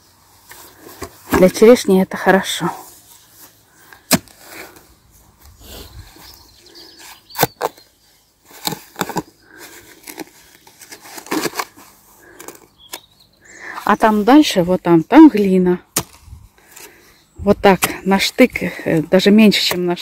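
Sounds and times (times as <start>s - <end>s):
spade chopping and scraping soil: 4.0s - 4.8s, 7.2s - 7.8s, 8.4s - 9.3s, 15.9s - 20.0s.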